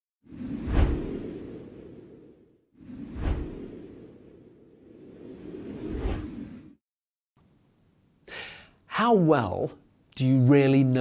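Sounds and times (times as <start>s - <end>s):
whoosh with low boom: 0.2s - 6.8s.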